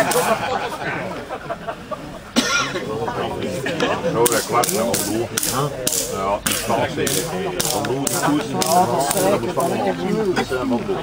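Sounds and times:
voices talking: 0.0s - 11.0s
person coughing: 2.4s - 2.8s.

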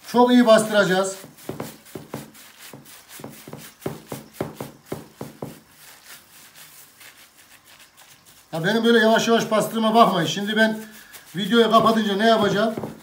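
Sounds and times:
soft taps and squelches: 11.7s - 13.0s.

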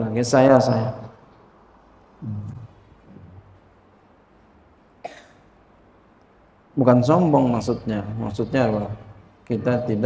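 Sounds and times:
man coughing: 5.0s - 5.5s.

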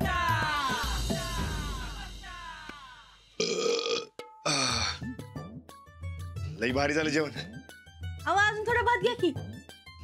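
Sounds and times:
man burping loudly: 3.4s - 5.2s.

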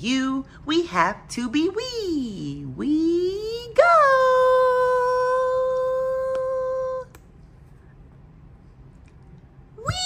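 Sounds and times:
woman singing: 2.7s - 7.1s.

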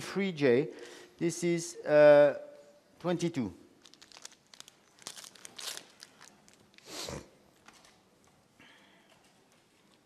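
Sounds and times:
loud packaging rustles: 3.8s - 6.9s
medical packaging crinkling and tearing: 3.8s - 6.9s.

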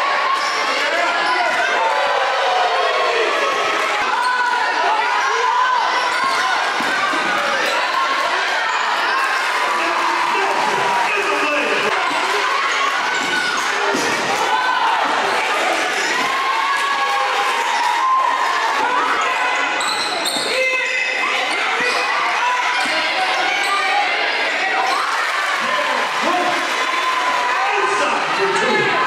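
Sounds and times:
voices in echoing hall: 0.0s - 29.0s.

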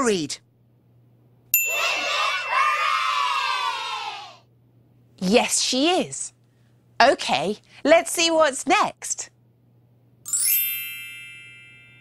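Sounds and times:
bright bell-like chime: 1.6s - 2.2s, 10.3s - 12.0s.

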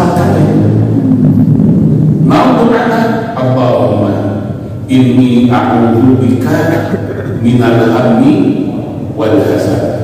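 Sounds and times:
man chanting: 2.2s - 10.0s.

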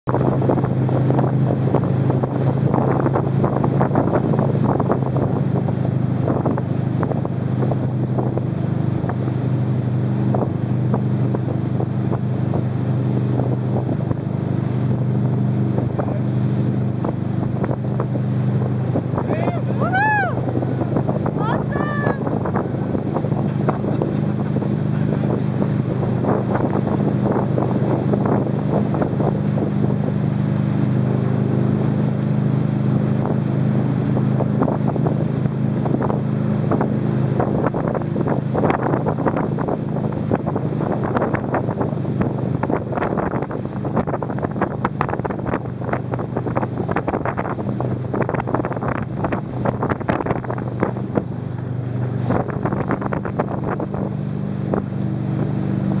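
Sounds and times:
boat engine droning: 0.1s - 56.0s
rushing water: 0.1s - 56.0s
wind buffeting microphone: 0.1s - 56.0s.

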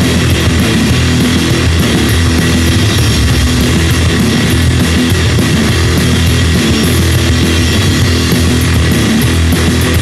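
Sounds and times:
distorted electric guitars: 0.0s - 10.0s
garage punk rock music: 0.0s - 10.0s.

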